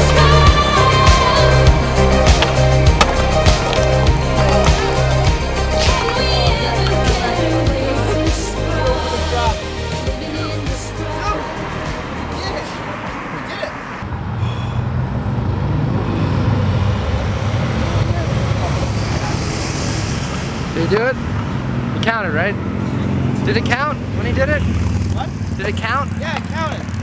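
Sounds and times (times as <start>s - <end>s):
street traffic: 0.0s - 27.0s
vehicle engine rumbling: 0.0s - 27.0s.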